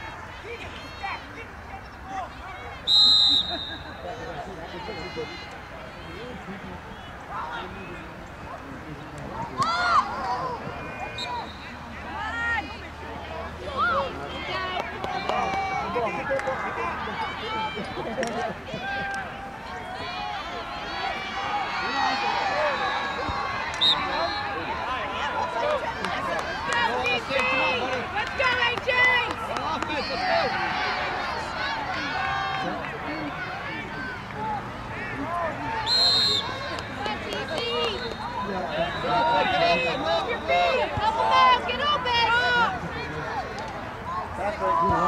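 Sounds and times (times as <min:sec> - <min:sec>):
crowd chatter and shouts: 0:00.0 - 0:45.0.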